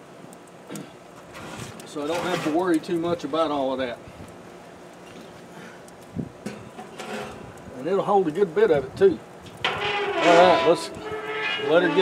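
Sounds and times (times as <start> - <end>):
low hiss: 0.0 - 12.0
wood fire crackling: 0.0 - 12.0.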